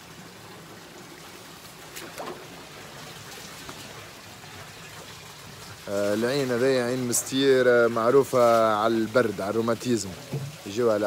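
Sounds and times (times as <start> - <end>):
water trickling: 0.0 - 11.0.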